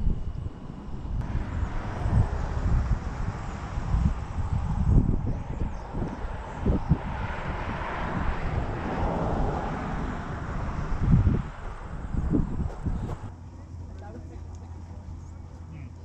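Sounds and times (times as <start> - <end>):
gusty wind rumble on microphone: 0.0 - 13.3
soft rushing noise: 0.0 - 13.3
handling bumps: 12.2 - 13.3.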